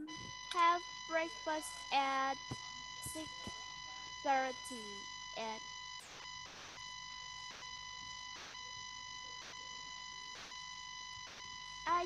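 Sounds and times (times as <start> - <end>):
high-pitched electronic tone: 1.3 - 5.6.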